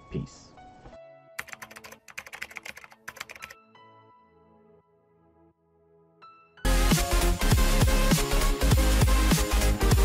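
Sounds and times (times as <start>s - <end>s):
soft music with held notes: 0.0s - 10.0s
keyboard typing clicks: 1.4s - 3.6s.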